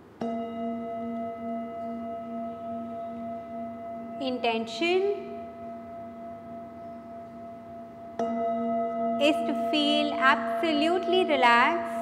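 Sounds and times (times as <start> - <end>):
singing bowl ringing: 0.2 - 12.0
mallet striking singing bowl: 8.1 - 9.2.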